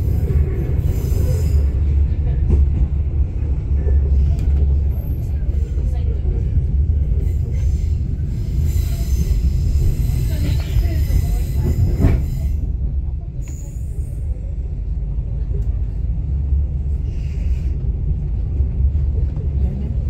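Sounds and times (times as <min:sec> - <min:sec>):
train wheels rumbling on track: 0:00.0 - 0:20.0.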